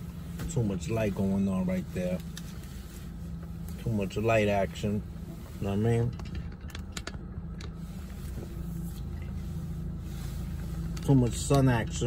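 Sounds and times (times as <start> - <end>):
car cabin hum: 0.0 - 12.0.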